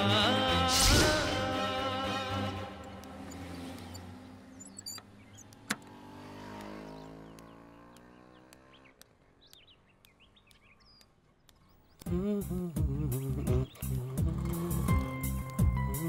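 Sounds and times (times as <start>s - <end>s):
background music: 0.0s - 3.8s, 12.0s - 16.0s
motor vehicle passing: 2.2s - 12.0s
birds chirping: 2.5s - 16.0s.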